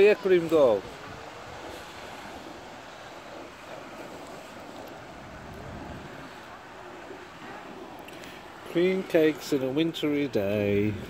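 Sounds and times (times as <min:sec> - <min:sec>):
wind noise on microphone: 0:00.0 - 0:08.8, 0:10.4 - 0:11.0.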